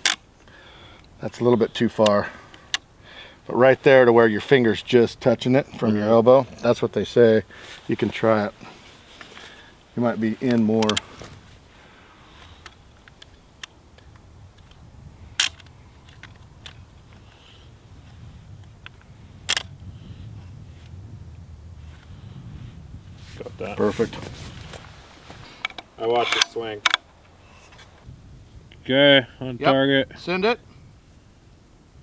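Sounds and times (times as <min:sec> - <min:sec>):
wind on microphone: 0:14.0 - 0:26.0, 0:27.2 - 0:32.0
rifle mechanical clicks: 0:15.4 - 0:16.8, 0:18.8 - 0:19.7.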